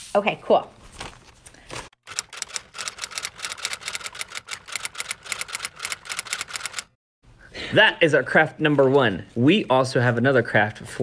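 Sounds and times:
rapid sharp clicks: 2.0 - 7.0.

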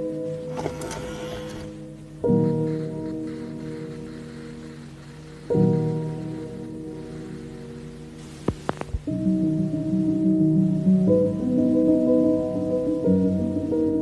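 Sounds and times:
soft rain-like hiss: 0.0 - 14.0.

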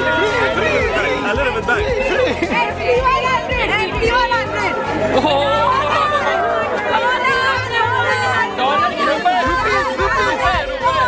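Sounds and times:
crowd talking and laughing: 0.0 - 11.0
music playing: 0.0 - 11.0.

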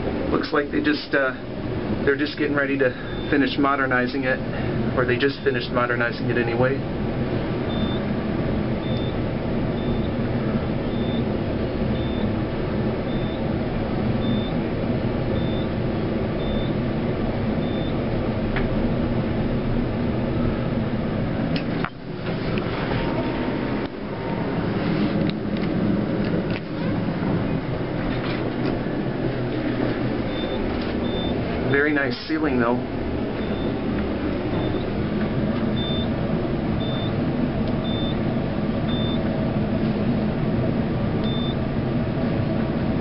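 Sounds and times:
elevator hum and rumble: 0.0 - 43.0.

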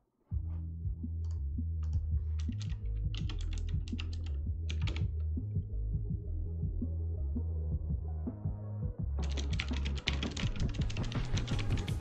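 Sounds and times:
fast keyboard typing: 2.3 - 5.2, 9.2 - 12.0.

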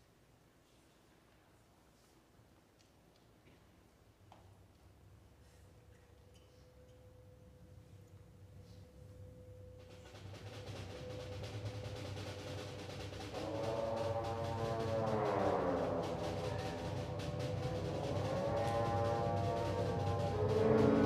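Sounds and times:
low drum roll: 9.8 - 21.0
wind instruments sliding notes: 10.1 - 21.0.

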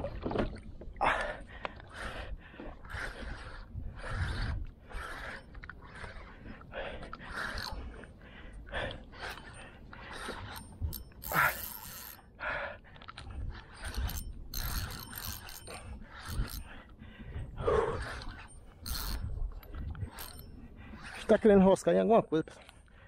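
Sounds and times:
fishing reel drag clicking: 7.3 - 7.9, 9.2 - 12.3, 13.2 - 16.9, 18.0 - 21.4.

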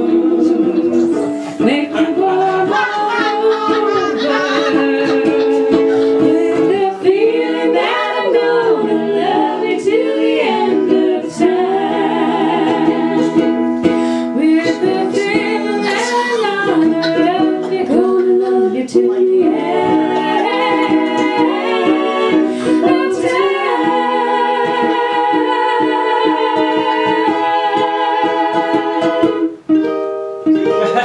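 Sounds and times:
women singing in harmony: 0.0 - 29.6
strummed ukulele: 0.0 - 31.0.

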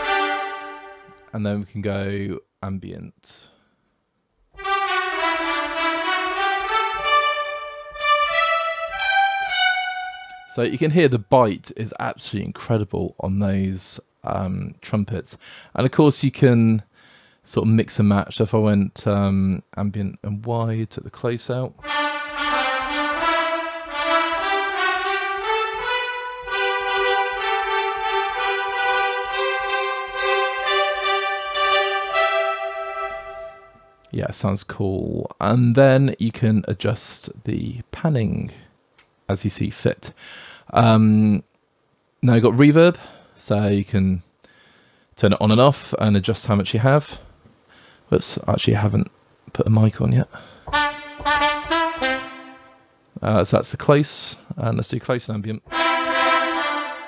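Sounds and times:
trumpets playing short chords: 0.0 - 1.4, 4.6 - 11.0, 21.8 - 34.1, 50.6 - 52.9, 55.6 - 57.0.

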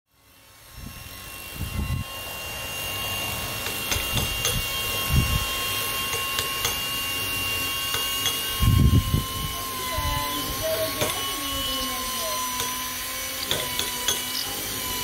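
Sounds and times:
milling spindle whining: 0.2 - 15.0.

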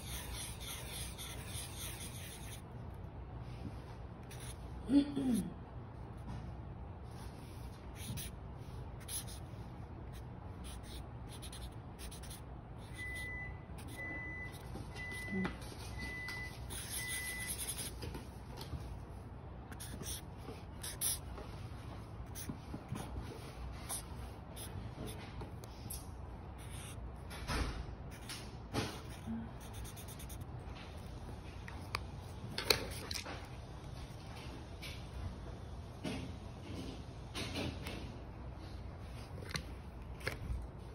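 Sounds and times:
marker scratching on paper: 0.0 - 2.7, 4.2 - 4.6, 7.4 - 14.7, 16.5 - 18.0, 19.7 - 21.3, 22.2 - 27.0, 29.0 - 30.5.

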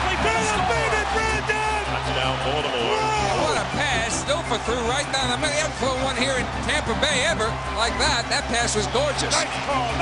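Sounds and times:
men shouting excitedly: 0.0 - 2.0, 2.8 - 5.2
low background music: 0.0 - 10.0.

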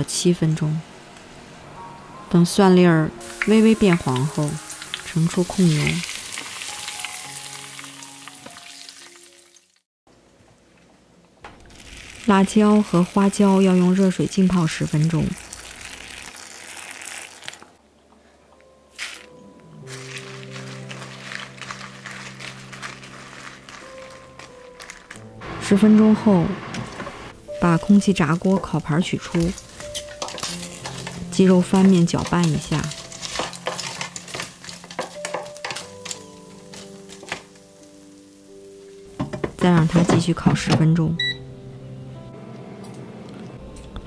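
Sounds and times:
background music: 0.0 - 9.8, 17.8 - 44.0
dry crunching and rustling: 18.9 - 25.4, 29.2 - 37.7.

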